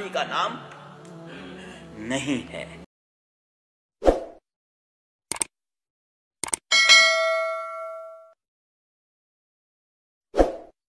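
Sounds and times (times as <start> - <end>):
notification bell ding: 6.7 - 8.4.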